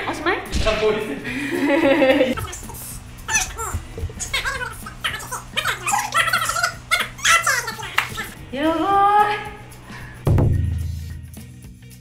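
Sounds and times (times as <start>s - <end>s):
woman straining vocal noises: 2.4s - 8.4s.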